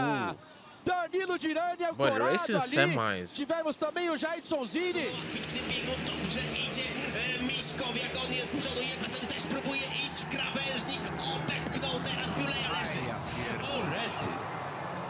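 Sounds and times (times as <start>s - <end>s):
motorcycle engines droning: 5.1s - 15.0s.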